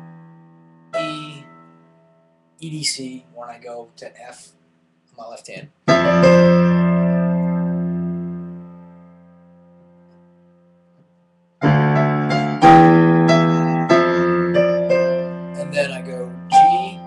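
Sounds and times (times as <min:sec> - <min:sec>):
digital piano chords and melody: 0:00.0 - 0:03.0, 0:05.8 - 0:17.0.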